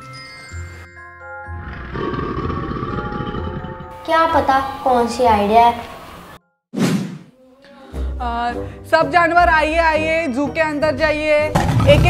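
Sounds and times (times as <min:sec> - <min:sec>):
animal roar growl: 0:01.6 - 0:04.0
background music held tones: 0:02.9 - 0:06.6.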